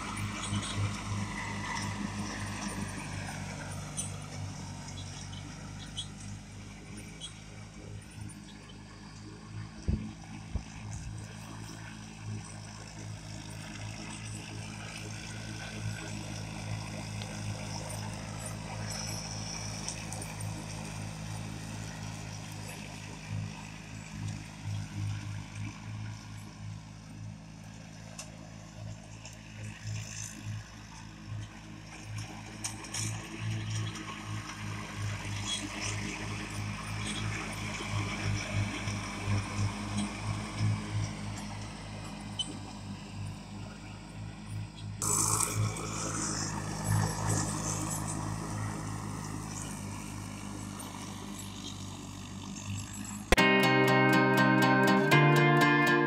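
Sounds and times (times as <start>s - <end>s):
lawn tractor engine mowing: 0.0s - 56.0s.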